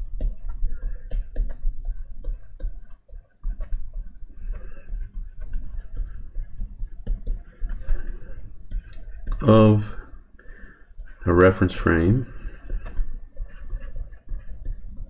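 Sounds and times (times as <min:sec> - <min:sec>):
stylus tapping on drawing tablet: 0:00.0 - 0:10.1, 0:12.2 - 0:15.0.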